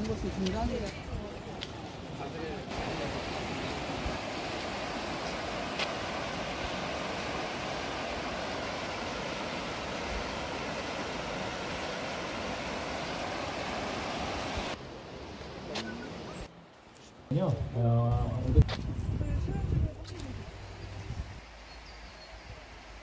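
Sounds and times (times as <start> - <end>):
water rushing over rocks: 2.7 - 16.3.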